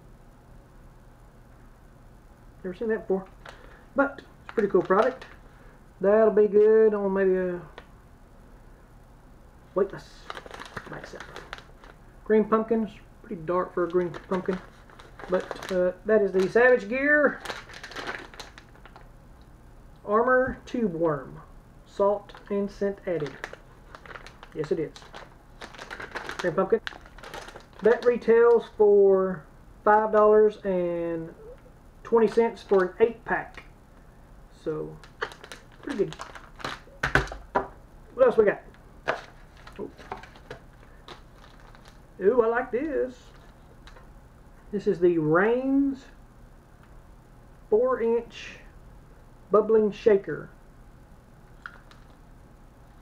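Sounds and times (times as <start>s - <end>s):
plastic package crinkling: 3.2s - 3.8s, 4.4s - 5.4s, 10.0s - 12.0s, 13.6s - 19.1s, 22.3s - 28.8s, 32.2s - 33.7s, 34.9s - 42.1s, 43.2s - 44.1s, 51.6s - 52.2s.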